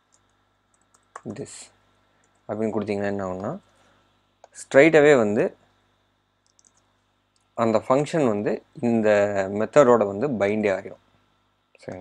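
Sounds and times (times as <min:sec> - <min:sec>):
computer mouse clicks: 0:00.1 - 0:01.4, 0:02.2 - 0:03.8, 0:06.4 - 0:07.5
man speaking: 0:01.2 - 0:01.8, 0:02.5 - 0:03.7, 0:04.5 - 0:05.6, 0:07.6 - 0:11.0, 0:11.8 - 0:12.0.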